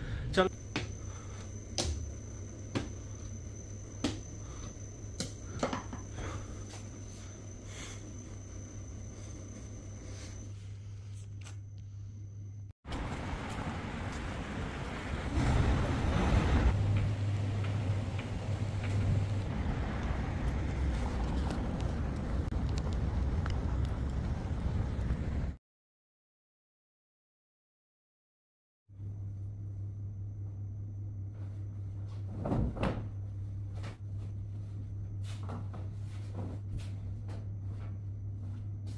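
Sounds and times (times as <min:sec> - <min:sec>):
low room hum: 0:00.0 - 0:25.4, 0:28.9 - 0:38.9
street traffic: 0:12.9 - 0:25.6
vehicle engine humming: 0:12.9 - 0:25.6.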